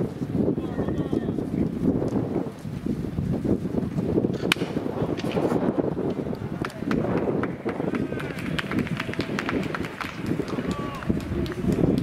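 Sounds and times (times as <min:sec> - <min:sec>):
wooden bat hitting baseball: 0:04.3 - 0:05.6.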